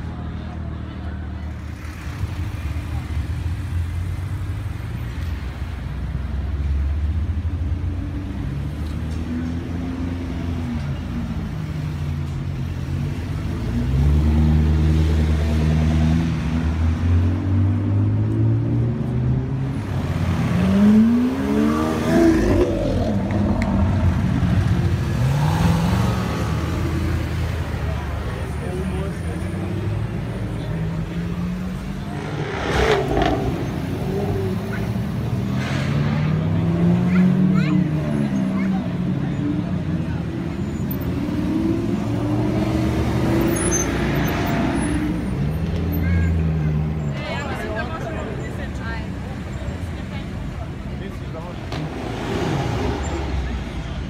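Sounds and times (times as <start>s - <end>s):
sports car engine revving: 31.2s - 37.1s.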